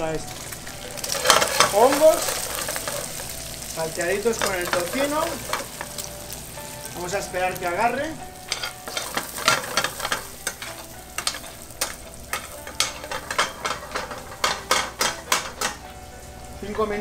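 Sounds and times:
food sizzling in frying pan: 0.0s - 17.0s
spoon scraping a pan: 0.8s - 6.1s, 8.5s - 15.9s
spoon knocking on pan: 8.5s - 15.9s.

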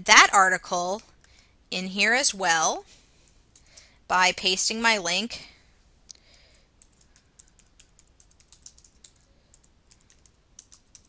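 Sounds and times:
typing on computer keyboard: 6.3s - 11.0s.

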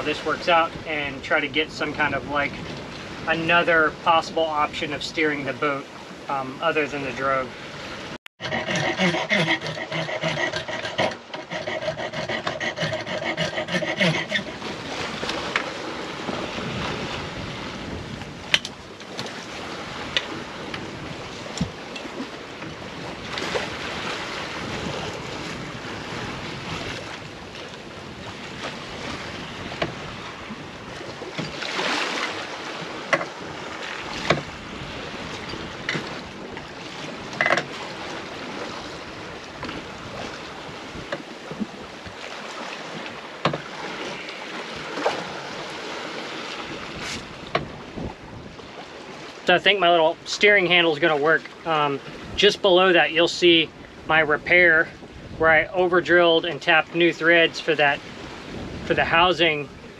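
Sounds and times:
wind and water rushing: 0.0s - 59.9s
knocks and clicks of hardware: 37.4s - 37.7s.

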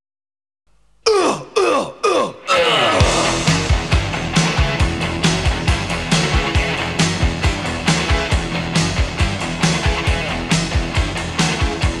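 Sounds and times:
music: 2.5s - 12.0s.

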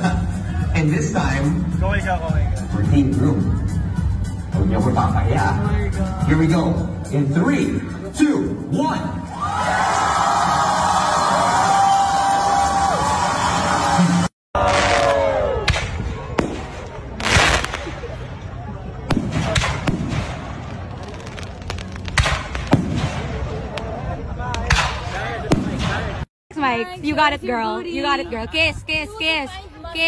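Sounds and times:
crowd screaming and cheering: 9.2s - 17.0s
fireworks bangs and crackles: 14.6s - 26.3s.

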